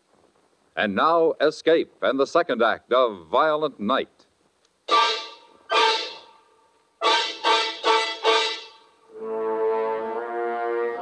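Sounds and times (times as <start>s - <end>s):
brass band playing loud chords: 4.9s - 6.3s, 7.0s - 11.0s.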